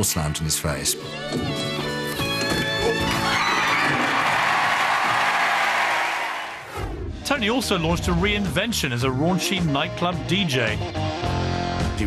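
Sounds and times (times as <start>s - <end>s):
audience cheering and applauding: 2.9s - 6.7s.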